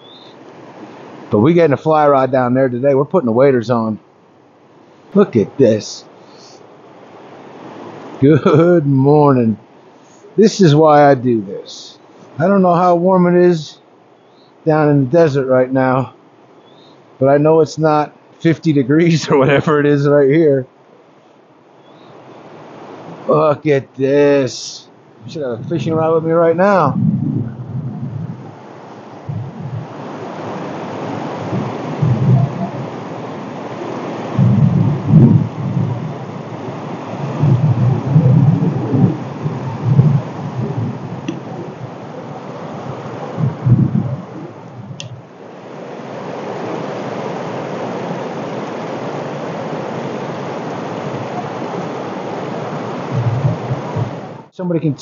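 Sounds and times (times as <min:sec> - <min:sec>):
wind buffeting microphone: 0:25.2 - 0:54.5
water rushing over rocks: 0:28.3 - 0:54.5.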